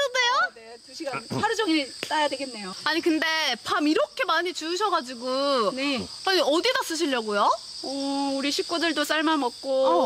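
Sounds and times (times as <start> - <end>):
insect chorus: 0.0 - 10.0
woman exclaiming: 9.6 - 10.0.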